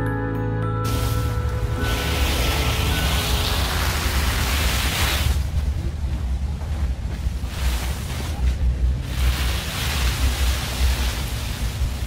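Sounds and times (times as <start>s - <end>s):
mat of branches dragged over grass: 0.9s - 5.7s, 7.0s - 12.0s.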